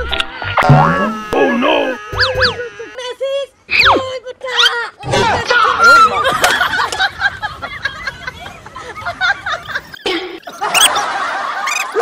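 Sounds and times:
cartoon falling glide: 0.3 - 2.6
cartoon chirps: 0.4 - 3.0, 10.7 - 11.0.

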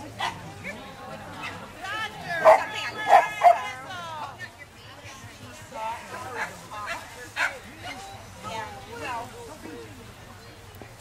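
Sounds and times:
dog barking: 2.4 - 3.7.

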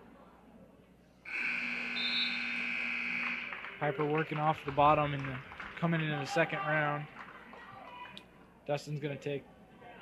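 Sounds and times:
scoreboard buzzer: 1.3 - 3.7.

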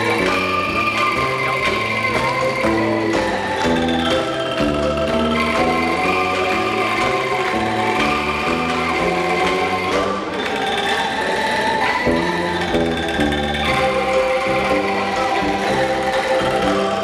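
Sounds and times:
bamboo angklung ensemble: 0.0 - 17.0.

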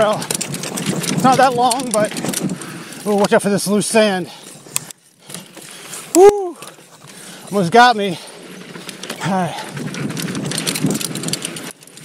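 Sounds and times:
bike rattling over bumps: 0.0 - 12.0.

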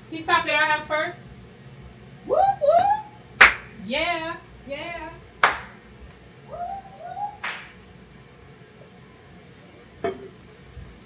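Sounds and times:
high-pitched cheering voices: 2.3 - 3.2, 6.5 - 7.6
sharp smacks: 3.4 - 3.7, 5.4 - 5.8, 7.4 - 7.8.

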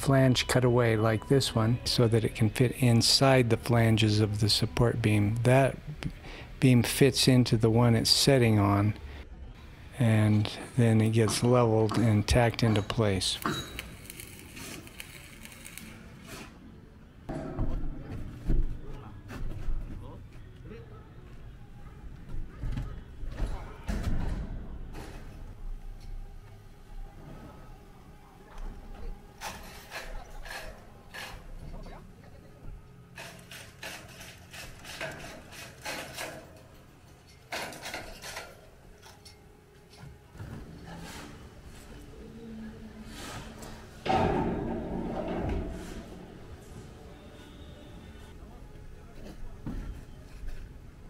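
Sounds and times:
metal beams knocking and clanking: 11.1 - 13.8, 44.0 - 47.6.

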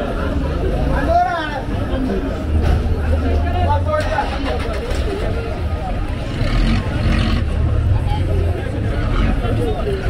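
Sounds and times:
minibus engine rumbling: 0.0 - 10.0
passers-by chattering: 0.0 - 10.0.

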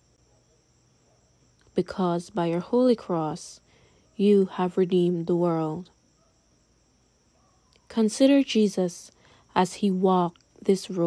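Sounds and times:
crickets chirring: 0.0 - 11.0
woman speaking: 1.6 - 6.0, 7.8 - 11.0.

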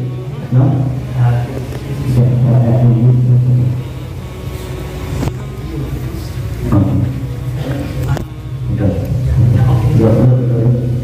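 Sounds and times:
man speaking over loudspeaker: 0.0 - 3.8, 5.6 - 11.0
low hum: 0.0 - 11.0.

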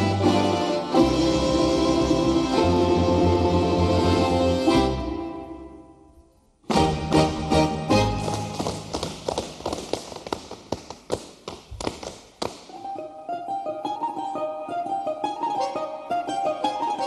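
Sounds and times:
folk dance music: 0.0 - 17.0
hands slapping boots: 8.0 - 13.0.

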